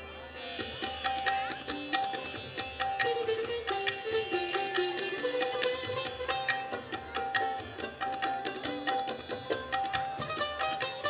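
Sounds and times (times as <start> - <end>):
plucked string melody: 0.0 - 11.0.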